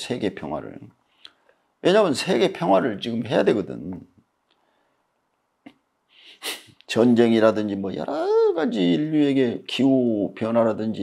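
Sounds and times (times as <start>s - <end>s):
man's sharp intake of breath: 6.1s - 6.8s.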